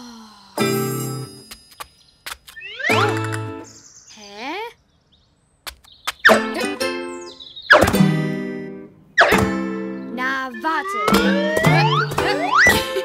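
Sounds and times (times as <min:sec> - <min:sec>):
plucked string cartoon music: 0:02.8 - 0:03.7, 0:06.3 - 0:13.0.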